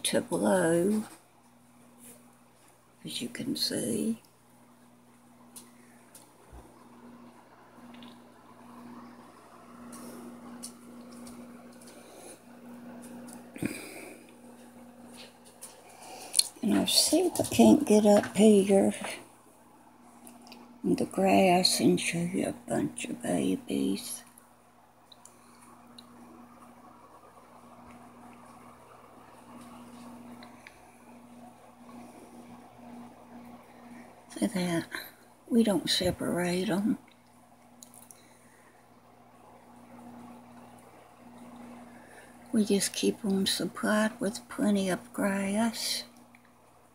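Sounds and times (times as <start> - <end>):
aquarium equipment humming: 0.0 - 46.9.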